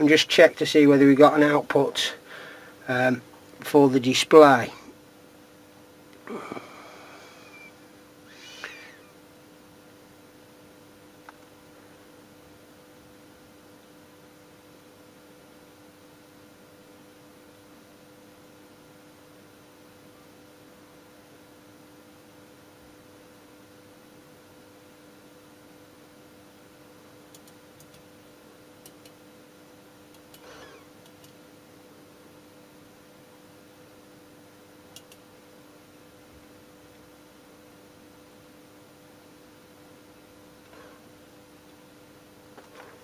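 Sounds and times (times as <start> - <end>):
low electrical hum: 0.0 - 43.0
probe tip ticking on chip pins: 34.9 - 35.2.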